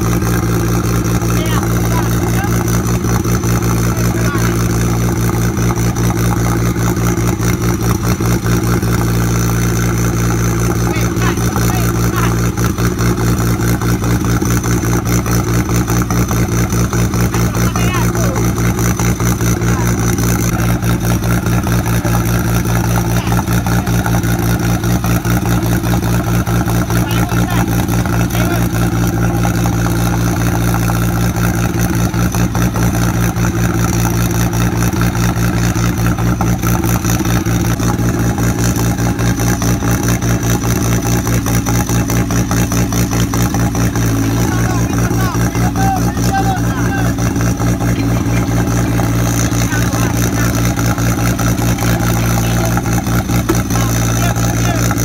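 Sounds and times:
buggy engine idling: 0:00.0 - 0:55.0.

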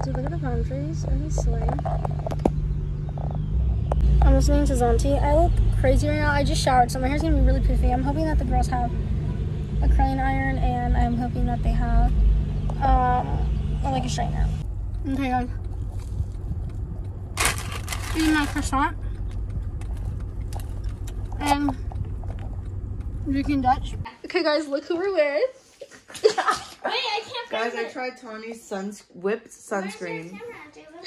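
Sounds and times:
car engine and road rumble: 0:00.0 - 0:24.8
croissant crust crunching: 0:15.6 - 0:22.7.

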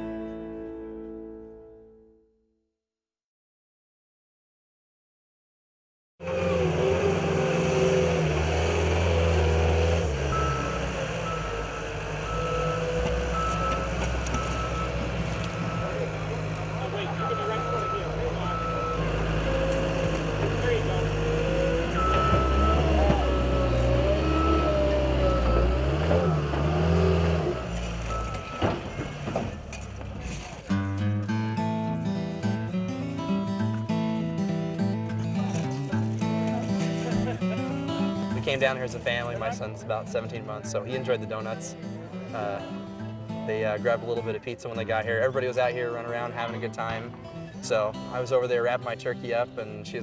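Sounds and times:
heavy vehicle engine running: 0:06.2 - 0:48.5
reversing alarm beeping: 0:10.3 - 0:26.6, 0:27.5 - 0:29.1.

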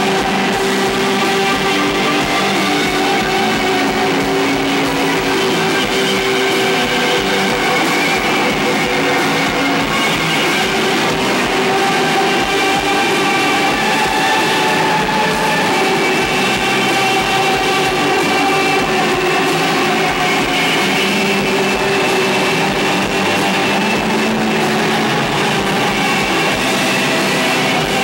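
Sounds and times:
rock band playing: 0:00.0 - 0:28.0.

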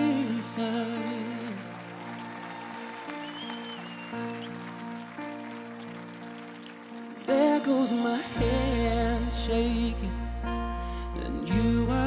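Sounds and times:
keyboard playing held chords: 0:00.0 - 0:12.0.

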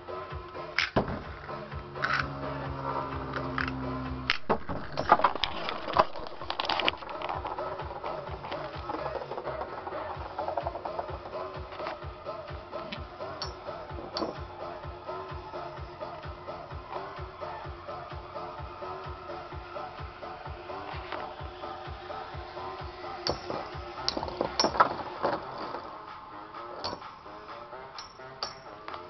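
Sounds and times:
electronic dance music: 0:00.0 - 0:04.3, 0:06.3 - 0:28.2
spinning tops in plastic stadium: 0:00.1 - 0:29.0
sharp clacks of tops colliding: 0:28.0 - 0:29.0.

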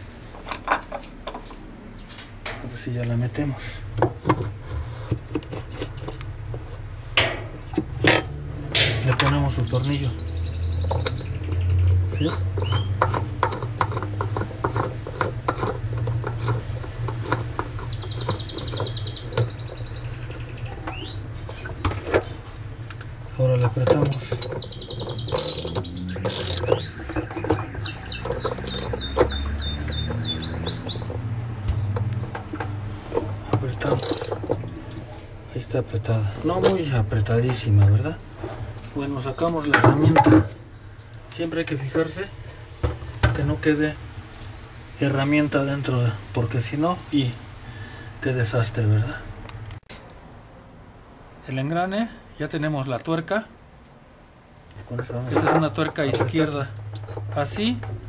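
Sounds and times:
plastic scraping on metal shaft: 0:04.3 - 0:06.8, 0:12.2 - 0:19.6, 0:23.7 - 0:29.4, 0:31.9 - 0:35.0
bird singing whistled notes: 0:09.6 - 0:13.0, 0:16.4 - 0:21.6, 0:23.0 - 0:31.2
ratchet wrench clicks: 0:25.3 - 0:26.7, 0:28.6 - 0:29.0, 0:34.0 - 0:34.4.

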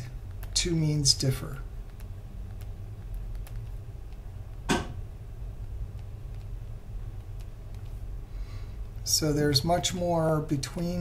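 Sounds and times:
low background hum: 0:00.0 - 0:11.0
stylus tick on tablet: 0:01.8 - 0:04.6, 0:05.6 - 0:06.6, 0:07.2 - 0:08.0.

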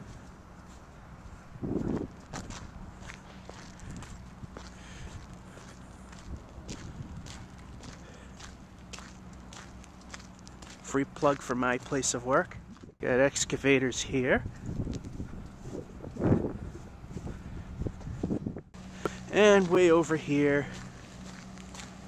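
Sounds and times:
footsteps on asphalt: 0:00.0 - 0:13.0, 0:14.5 - 0:22.0
low steady hum: 0:14.4 - 0:22.0.

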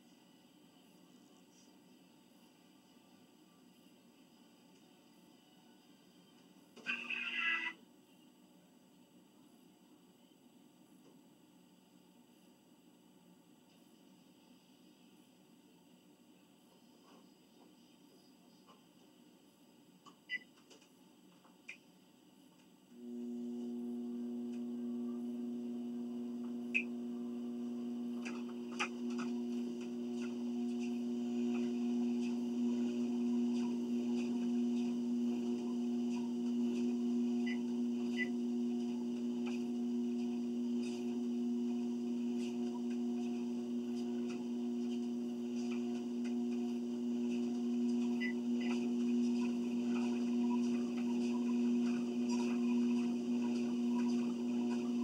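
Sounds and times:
treadmill motor humming: 0:22.9 - 0:55.0.

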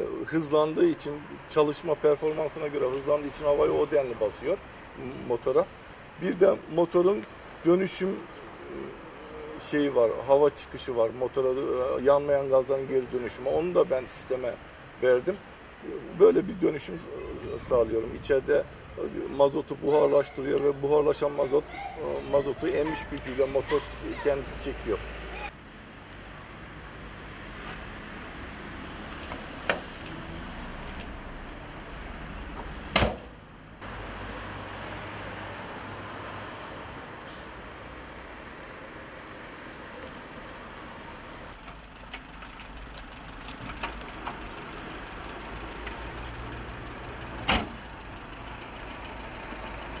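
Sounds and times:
street noise: 0:00.0 - 0:50.0
sharp knocks: 0:32.9 - 0:33.4.

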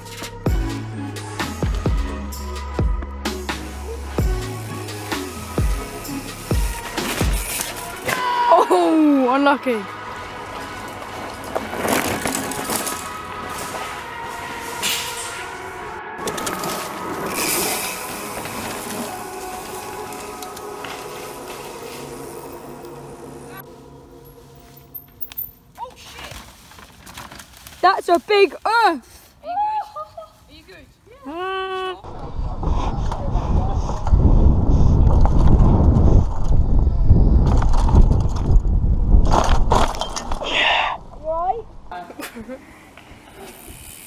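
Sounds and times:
bike tyres rolling on dirt: 0:04.5 - 0:08.6, 0:09.3 - 0:15.6, 0:16.2 - 0:23.7, 0:24.3 - 0:29.7, 0:32.1 - 0:40.4, 0:42.8 - 0:44.0
wind buffeting microphone: 0:32.0 - 0:40.4.

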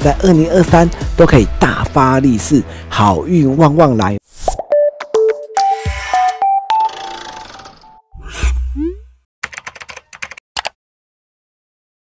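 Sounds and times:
computer keyboard typing: 0:09.4 - 0:10.8.

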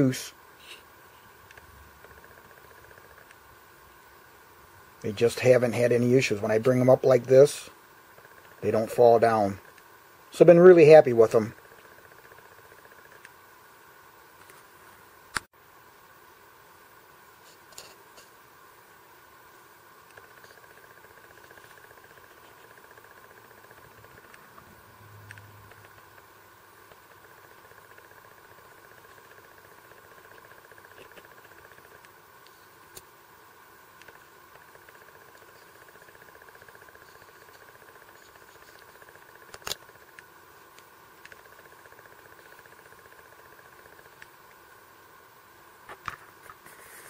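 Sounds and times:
faint steady buzz: 0:00.0 - 0:47.0
faint whirring hum: 0:00.0 - 0:47.0.

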